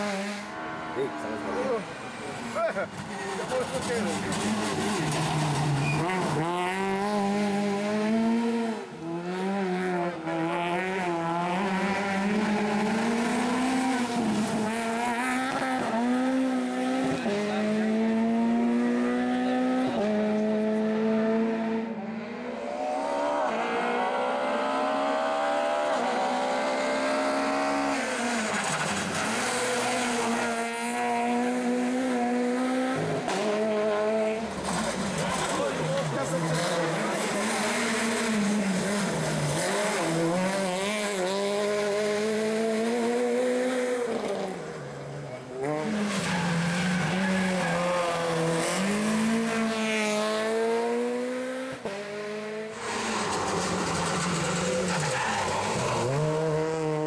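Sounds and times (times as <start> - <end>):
rally car engine revving: 0.0 - 57.0.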